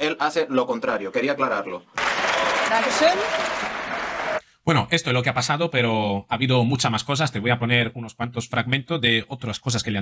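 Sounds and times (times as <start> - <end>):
assembly applauding: 2.0 - 4.4.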